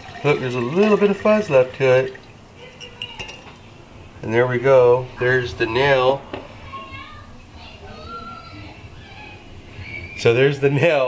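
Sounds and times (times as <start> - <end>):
liquid trickling and dripping: 0.0 - 3.5
glass clinks: 2.8 - 3.5.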